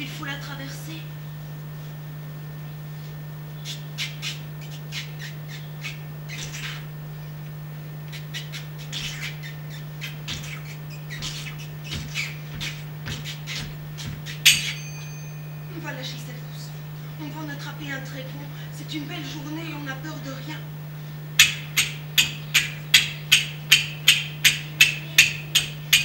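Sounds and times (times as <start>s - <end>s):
finger cymbals strike: 14.3s - 16.0s.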